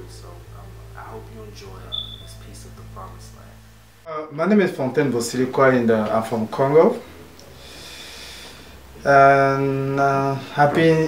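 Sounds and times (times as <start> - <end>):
faint room hiss: 0.0 - 11.0
man breathing through nose: 7.5 - 8.8.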